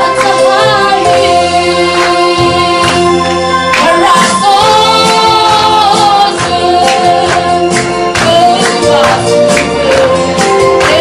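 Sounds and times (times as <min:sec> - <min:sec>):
sustained backing notes: 0:00.0 - 0:11.0.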